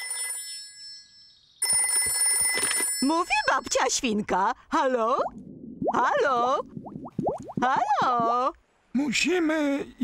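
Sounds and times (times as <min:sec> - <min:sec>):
cartoon telephone ringing: 0:00.0 - 0:03.8.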